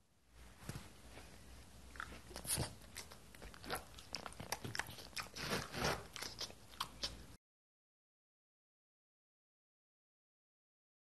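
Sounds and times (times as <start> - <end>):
dog crunching a snack: 1.9 - 7.2.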